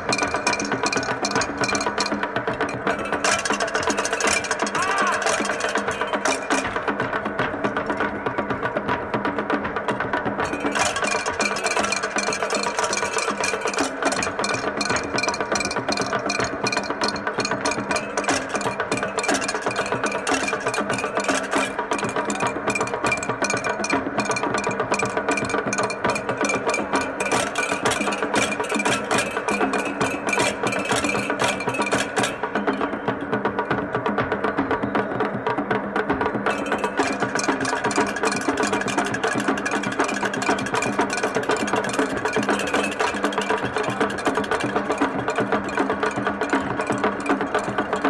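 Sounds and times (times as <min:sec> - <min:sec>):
sharp percussion strikes: 0:00.0 - 0:48.0.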